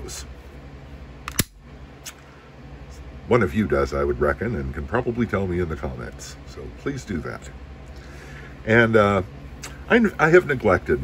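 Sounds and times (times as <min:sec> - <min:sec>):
pistol metallic clicks: 0:01.3 - 0:01.6.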